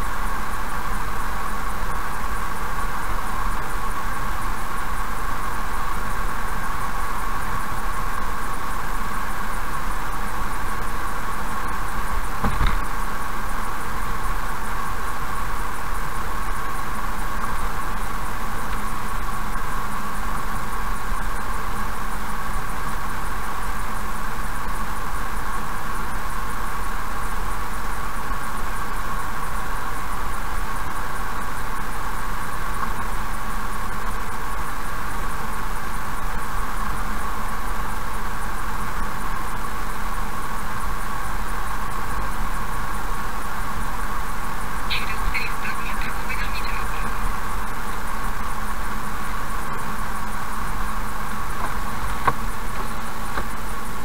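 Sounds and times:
car interior road noise: 1.0s - 22.0s, 42.3s - 54.0s.

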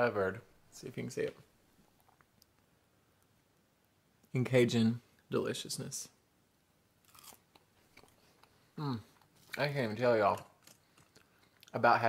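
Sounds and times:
faint crunch of chewing: 7.0s - 9.7s, 10.3s - 11.8s.

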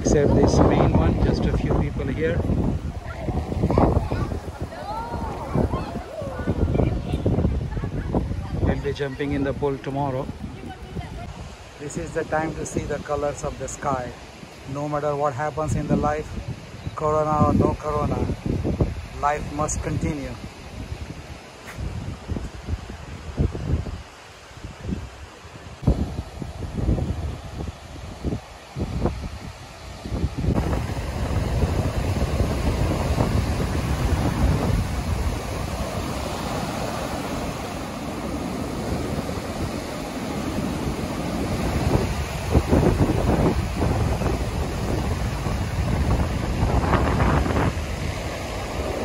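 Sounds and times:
ocean surf breaking: 0.0s - 49.0s
wind buffeting microphone: 0.0s - 49.0s.

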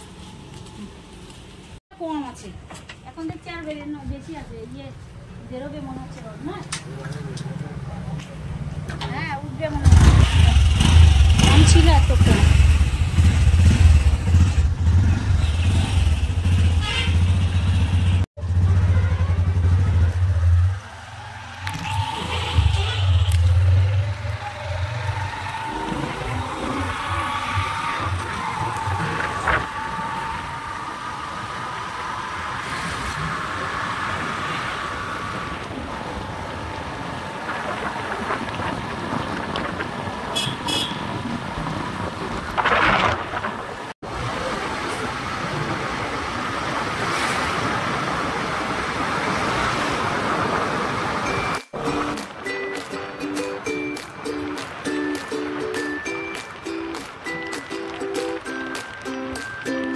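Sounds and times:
road noise with steady whine: 0.0s - 59.9s
vehicle engine hum: 6.3s - 55.3s
rushing wind: 20.7s - 59.7s.

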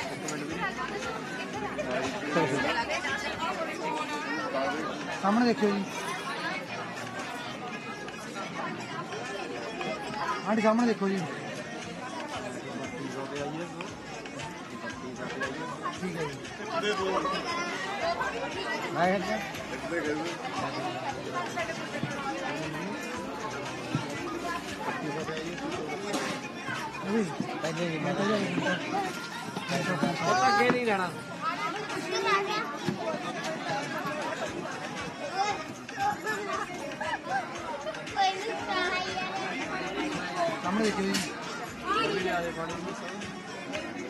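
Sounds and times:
group of people chattering: 0.0s - 44.0s.

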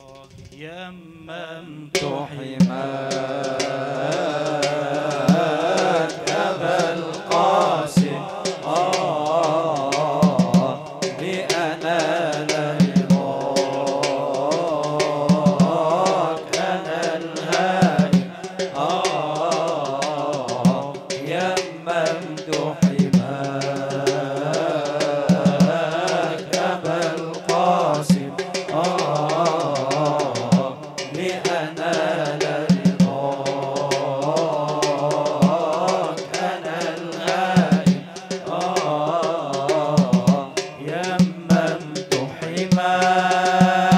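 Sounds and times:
man chanting into a microphone: 0.0s - 43.9s
percussion hits: 2.0s - 43.9s.

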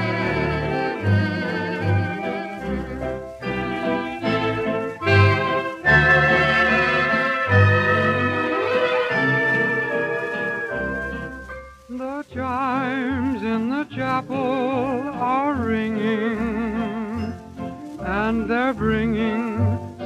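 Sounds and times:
man singing with vibrato: 0.0s - 10.6s, 11.9s - 20.0s
dance orchestra sustained chords: 0.0s - 11.6s.

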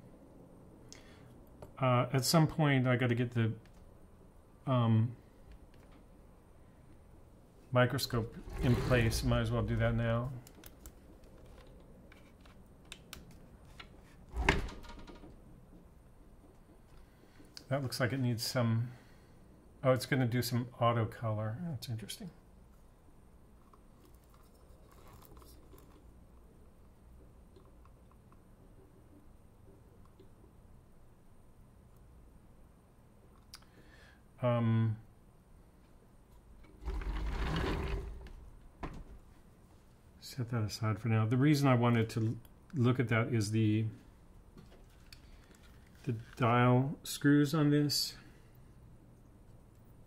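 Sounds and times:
rumbling mechanical scrape: 8.1s - 10.1s, 36.8s - 38.5s.

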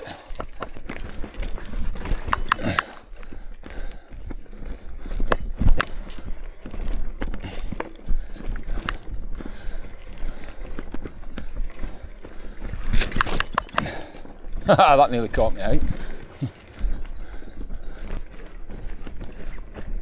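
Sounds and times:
bike knocking and rattling: 0.0s - 20.0s
bike tyres on loose soil: 0.0s - 20.0s.

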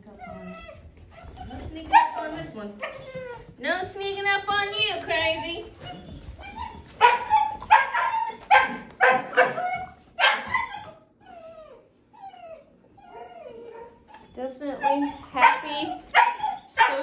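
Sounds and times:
puppy whining: 0.0s - 3.6s, 4.8s - 17.0s
puppy yapping: 5.2s - 17.0s.

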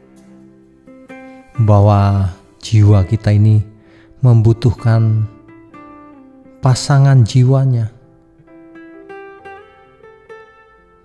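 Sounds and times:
guitar picking slow notes: 0.0s - 11.0s.

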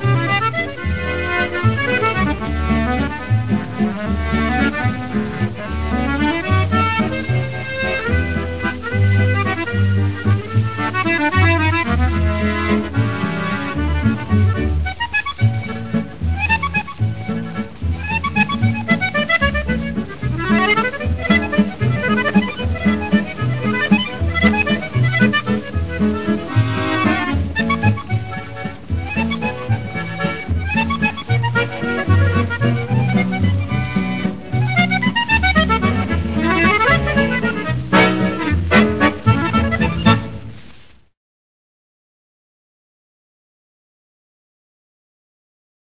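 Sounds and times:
accordion melody: 0.0s - 40.6s
plucked bass line: 0.0s - 40.6s
guitar accompaniment: 0.0s - 40.8s.

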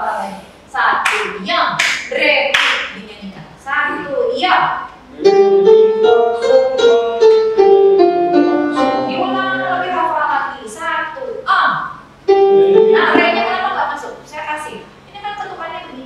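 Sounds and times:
voices: 0.0s - 6.2s, 8.8s - 12.0s, 12.6s - 16.0s
electronic keyboard melody with choir: 5.1s - 10.1s, 12.3s - 13.8s.

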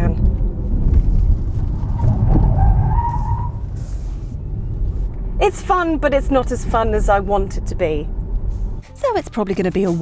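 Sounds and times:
road and tyre noise: 0.0s - 10.0s
tyre squeal: 1.9s - 4.4s.

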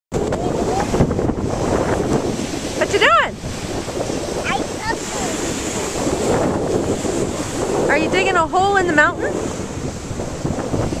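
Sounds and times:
surf breaking on beach: 0.1s - 11.0s
wind buffeting microphone: 0.1s - 11.0s.

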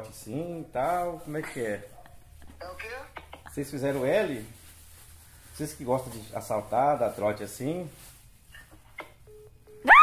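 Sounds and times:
short phone beeps: 9.2s - 9.9s.

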